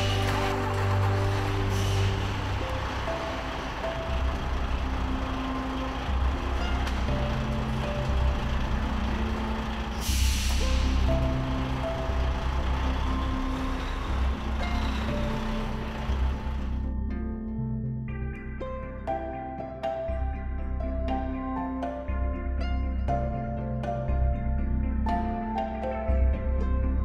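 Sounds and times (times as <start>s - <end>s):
diesel truck engine running: 0.0s - 17.4s
background music: 0.0s - 27.0s
air brakes hiss: 1.7s - 2.3s, 10.0s - 11.2s.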